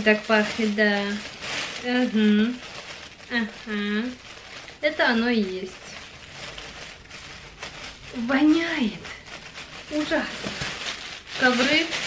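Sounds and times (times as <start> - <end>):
plastic bag rustling: 0.0 - 12.0.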